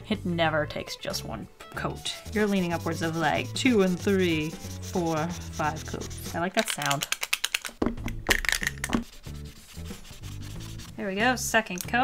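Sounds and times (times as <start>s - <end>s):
marker scrubbing on paper: 2.0s - 6.6s, 9.0s - 11.2s.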